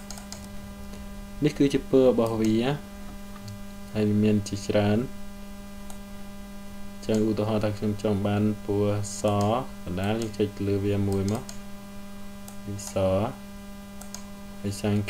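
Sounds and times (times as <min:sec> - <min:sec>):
electrical mains hum: 0:00.0 - 0:15.0
person speaking: 0:00.8 - 0:05.2, 0:07.0 - 0:11.6, 0:12.6 - 0:13.4, 0:14.6 - 0:15.0.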